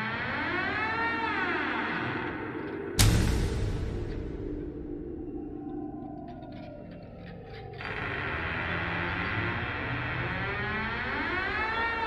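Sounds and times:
low dark drone: 0.0s - 12.0s.

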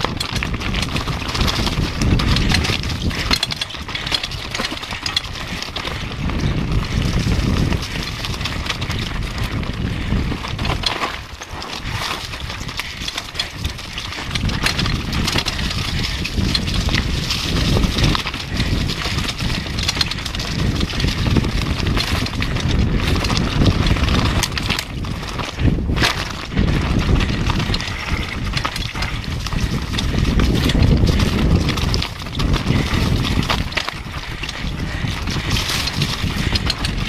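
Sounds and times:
steady low rumble: 0.0s - 11.0s, 11.8s - 37.0s
bike rattling over stones: 0.0s - 37.0s.

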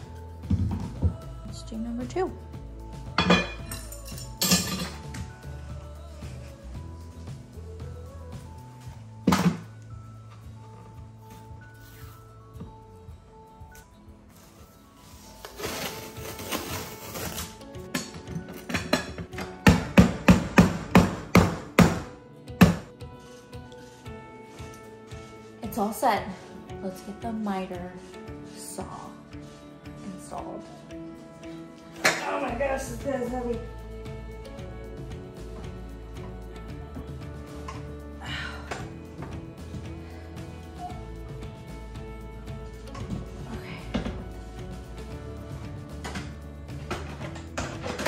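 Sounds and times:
background music: 0.0s - 48.0s
tape being peeled off: 14.3s - 17.7s.

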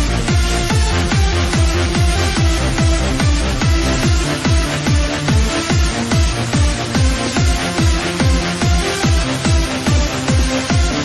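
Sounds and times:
bass notes: 0.0s - 11.0s
electronic dance music: 0.0s - 11.0s
kick drum thumps: 0.0s - 11.0s.

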